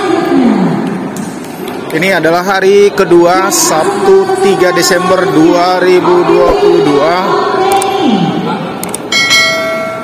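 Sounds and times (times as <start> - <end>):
bright bell ding: 9.1 - 10.0.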